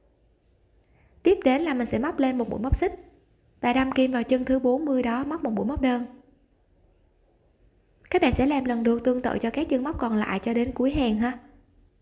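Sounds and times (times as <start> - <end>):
woman's voice: 1.2 - 6.3, 8.0 - 11.6.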